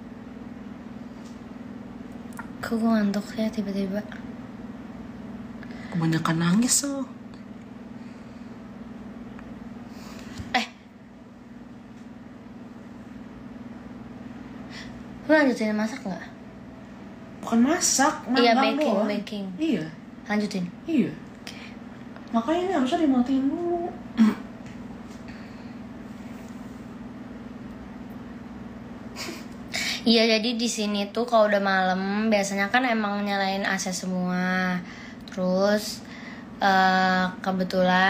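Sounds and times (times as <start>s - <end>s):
steady low room hum: 0.0s - 38.0s.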